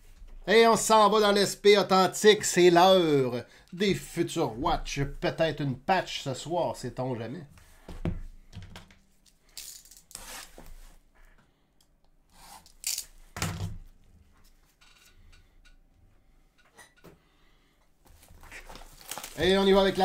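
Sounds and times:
cardboard and wrapping rustling: 18.0s - 20.0s.

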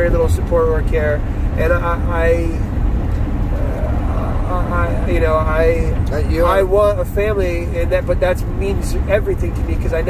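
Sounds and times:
man speaking: 0.0s - 2.7s, 3.5s - 10.0s
car road rumble from inside: 0.0s - 10.0s.

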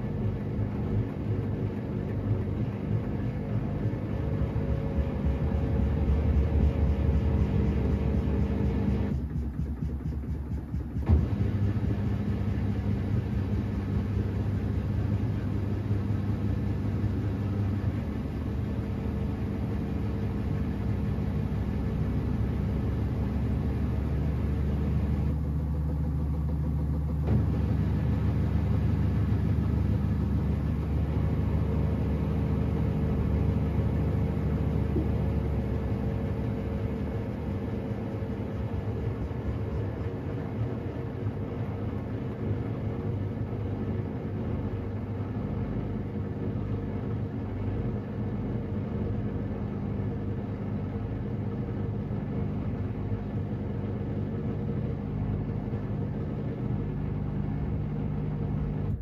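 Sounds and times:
washing machine running: 0.0s - 59.0s.

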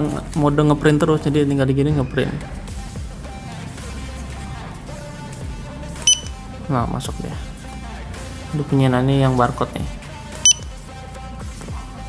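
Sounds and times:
quiet background music: 0.0s - 12.0s
barcode scanner beep: 6.1s - 6.4s, 10.5s - 10.7s.

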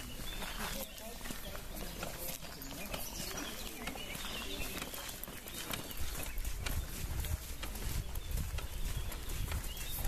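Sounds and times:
footsteps crunching on clay: 0.0s - 10.0s.

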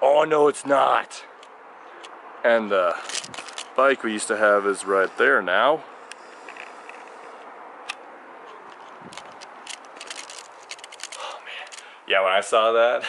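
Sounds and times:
outdoor background hiss: 0.0s - 13.0s
small clicks and rattles: 3.0s - 3.8s, 8.7s - 11.9s.

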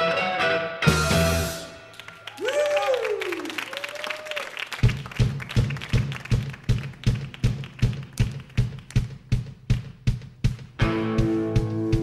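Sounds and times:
audience applause: 1.9s - 9.1s
drum kit steady beat: 4.8s - 12.0s.

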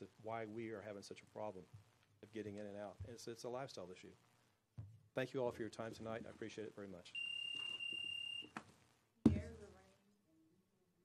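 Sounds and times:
high-pitched electronic beep: 7.2s - 8.5s.

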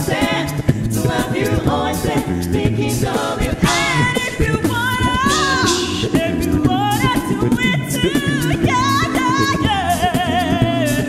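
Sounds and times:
backing vocal harmonies: 0.0s - 11.0s
low sung bass notes: 0.0s - 11.0s
woman singing lead with vibrato: 0.0s - 11.0s.

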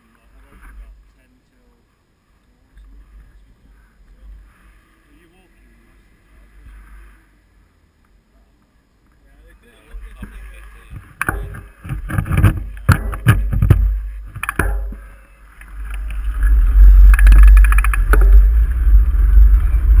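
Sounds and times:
mountain bike rattling and knocking: 11.0s - 20.0s
sharp clicks: 15.6s - 18.5s
wind buffeting on microphone: 15.6s - 20.0s.

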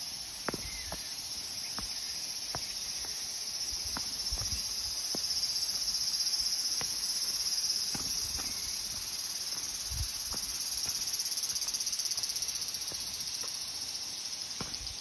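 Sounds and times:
cicadas singing: 0.0s - 15.0s
footsteps on gravel: 1.8s - 3.2s, 3.8s - 6.0s, 6.6s - 13.6s.

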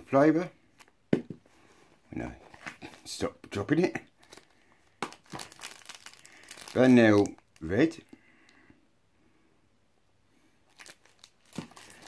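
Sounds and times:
cigarette packet knocks and taps: 1.1s - 1.4s.

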